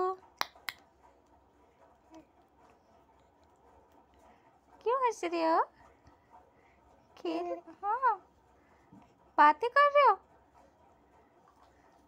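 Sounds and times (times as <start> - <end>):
woman speaking: 0.0 - 0.2, 4.8 - 5.7, 7.2 - 8.2, 9.4 - 10.2.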